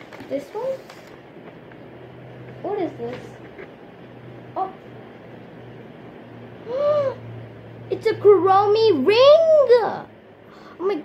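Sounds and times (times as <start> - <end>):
faint low hum: 0.0 - 11.0
girl humming hmm: 6.6 - 7.2.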